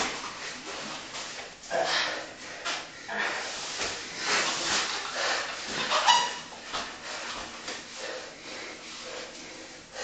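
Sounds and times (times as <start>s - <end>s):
people breathing hard: 1.7s - 5.8s, 6.8s - 10.0s.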